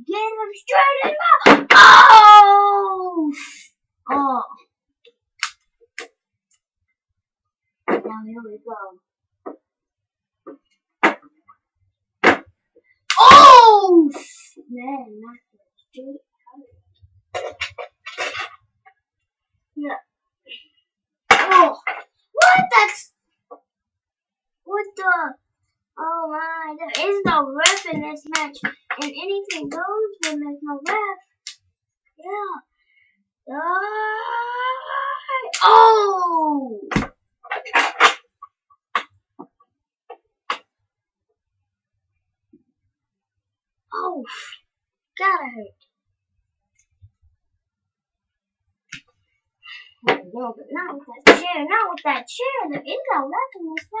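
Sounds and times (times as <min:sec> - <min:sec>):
toy figures knocking together: 0:12.2 - 0:12.5, 0:21.3 - 0:22.9, 0:26.9 - 0:31.0, 0:36.9 - 0:38.3
child making gliding vocal noises: 0:33.5 - 0:36.9.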